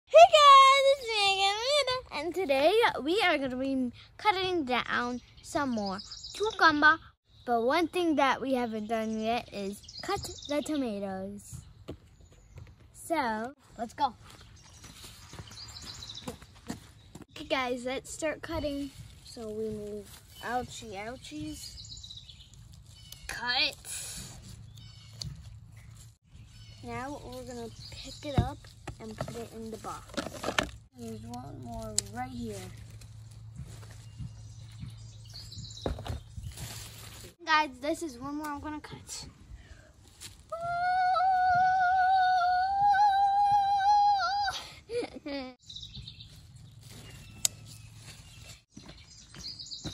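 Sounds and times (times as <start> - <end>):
child footsteps on dirt and stone: 11.5 - 13.0, 13.6 - 17.5, 24.6 - 37.4, 45.8 - 49.9
girl singing long high note: 40.6 - 44.5.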